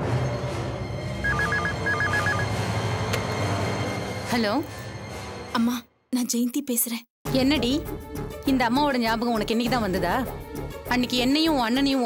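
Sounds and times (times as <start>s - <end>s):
telephone ringing electronic trill: 1.2s - 2.5s
low background music: 7.3s - 12.0s.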